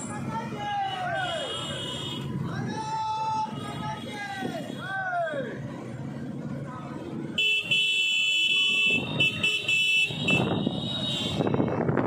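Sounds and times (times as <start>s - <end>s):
motorcycles running: 0.0s - 12.0s
horn long steady blasts: 0.9s - 2.4s, 7.4s - 11.7s.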